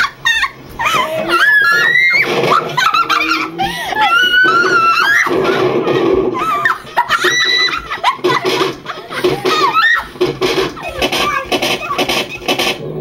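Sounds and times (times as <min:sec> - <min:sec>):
girls laughing and shrieking: 0:00.0 - 0:12.5.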